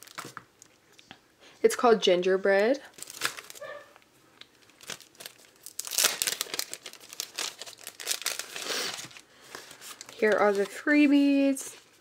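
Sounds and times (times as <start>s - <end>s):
plastic packaging crinkling: 0.0s - 0.7s, 2.9s - 12.0s
paper rustling: 4.8s - 12.0s.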